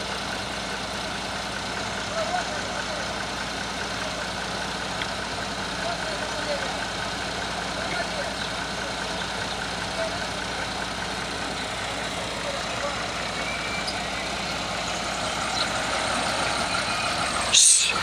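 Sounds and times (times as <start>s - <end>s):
diesel engine idling: 0.0s - 18.0s
men's voices: 0.0s - 18.0s.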